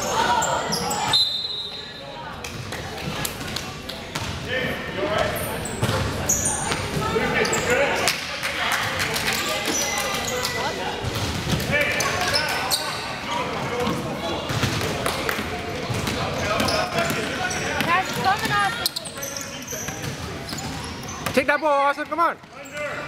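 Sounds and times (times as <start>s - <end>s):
spectators' voices echoing: 0.0s - 23.0s.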